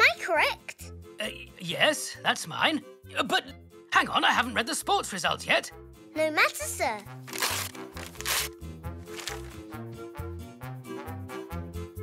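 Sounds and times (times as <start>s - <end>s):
light background music: 0.0s - 12.0s
newspaper tearing: 7.1s - 9.7s.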